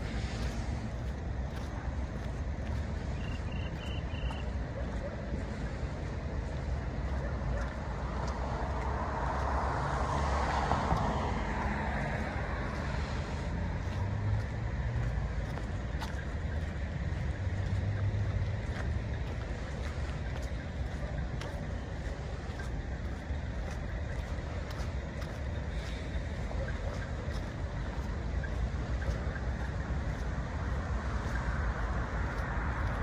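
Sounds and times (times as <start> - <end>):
distant road traffic rumble: 0.0 - 33.0.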